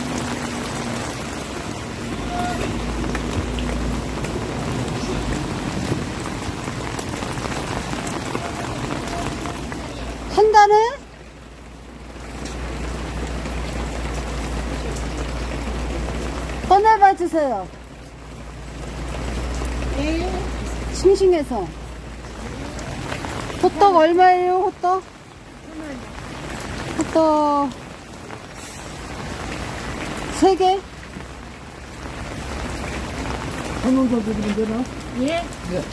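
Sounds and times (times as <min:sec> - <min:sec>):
steady rain falling: 0:00.0 - 0:35.9.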